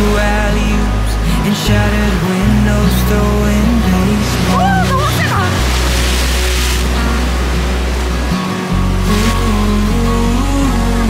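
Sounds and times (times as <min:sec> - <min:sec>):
background music with bass line: 0:00.0 - 0:11.0
waves breaking on rocks: 0:02.6 - 0:11.0.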